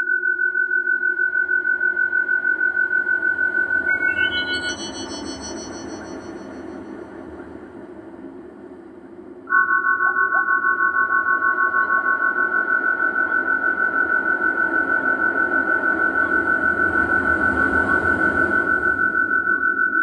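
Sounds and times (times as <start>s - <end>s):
high pulsing electronic tone: 0.2s - 7.4s
low noisy drone: 0.8s - 19.6s.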